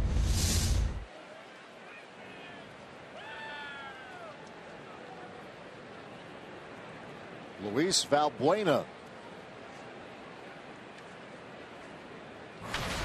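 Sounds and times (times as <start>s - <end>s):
ballpark crowd noise: 1.0s - 12.8s.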